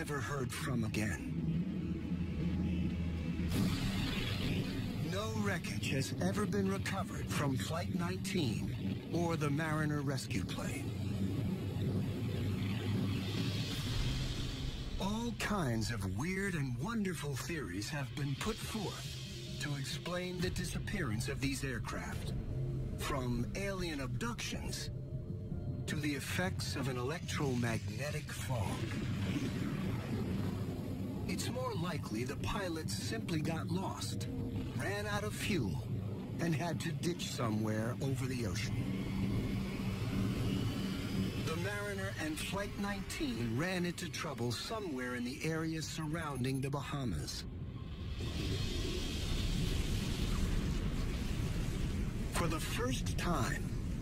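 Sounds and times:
propeller aircraft engines droning: 0.0 - 47.4
hissing whoosh: 1.2 - 7.4, 10.6 - 16.0, 47.6 - 54.0.

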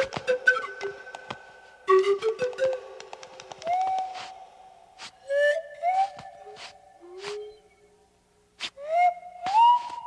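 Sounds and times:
steady background tone: 0.0 - 10.0
rising whistle glides: 3.6 - 7.8.

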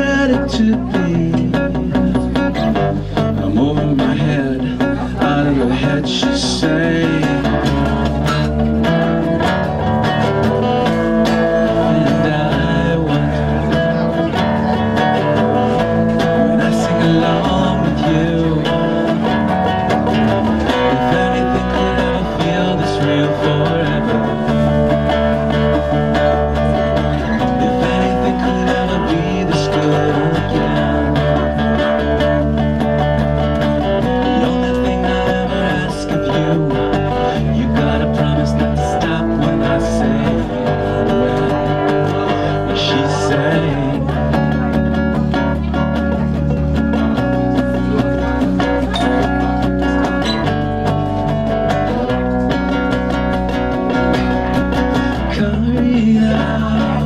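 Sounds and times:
electric bass: 0.0 - 57.0
person singing lead melody: 0.0 - 57.0
strummed acoustic guitar: 0.0 - 57.0.

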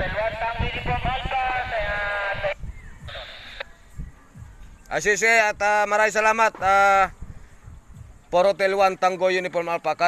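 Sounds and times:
voice over two-way radio: 0.0 - 3.6
radio static hiss: 0.0 - 3.7.

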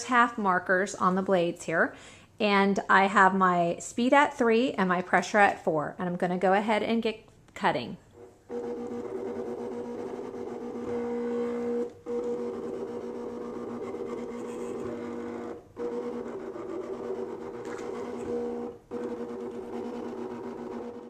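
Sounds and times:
cutting machine motor whine: 8.2 - 21.0.

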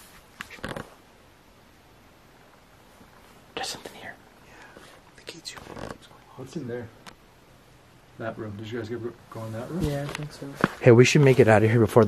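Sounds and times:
faint hiss: 0.0 - 12.0
whispered voice: 3.5 - 4.2, 5.1 - 6.4.

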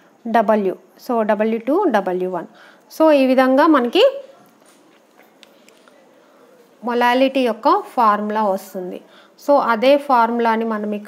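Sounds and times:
woman's voice: 0.2 - 4.4, 6.8 - 11.0.

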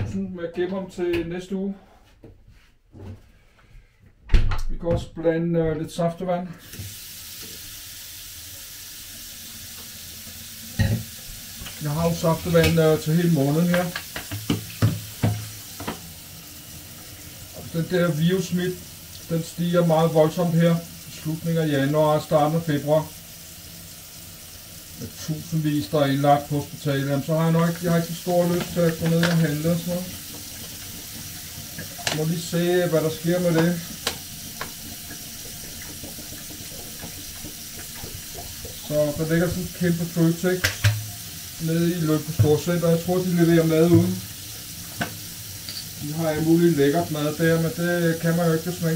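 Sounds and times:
tap running into metal sink: 10.7 - 16.0, 27.6 - 39.9, 40.6 - 41.2, 43.8 - 44.3, 44.9 - 46.0
dishes knocking and clattering: 10.8 - 11.1, 13.7 - 16.0, 33.5 - 38.8, 40.6 - 41.1.

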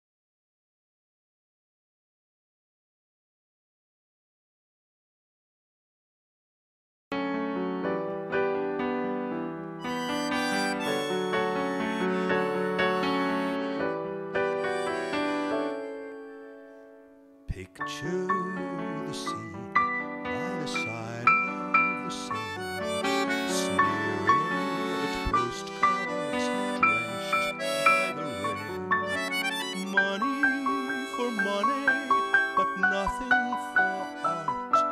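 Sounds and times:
keyboard playing: 7.2 - 34.9
accordion playing chords: 9.8 - 16.8, 20.2 - 34.9.

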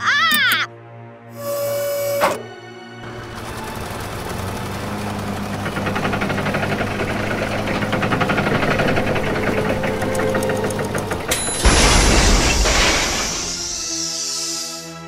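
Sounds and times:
cartoon engine hum with knocking: 3.0 - 13.7
loud burst of noise: 3.1 - 14.9.

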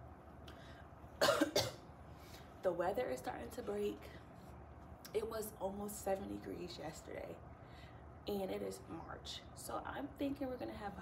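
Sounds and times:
woman coughing: 1.2 - 1.8.

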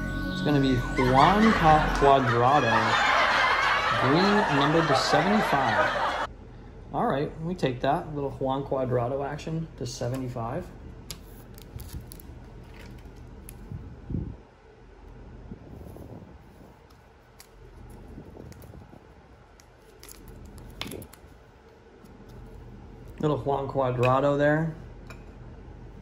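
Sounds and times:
plastic sleeve rustling: 11.2 - 13.8, 16.5 - 23.2.

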